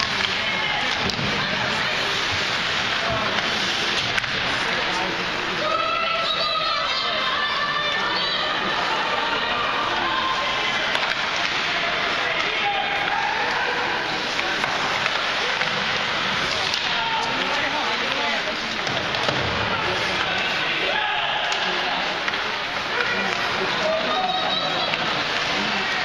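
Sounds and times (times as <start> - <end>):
skate blades scraping ice: 0.0 - 5.9, 9.5 - 20.8
hockey sticks and puck clacking: 0.0 - 6.9, 7.8 - 26.0
indistinct crowd voices: 0.0 - 26.0.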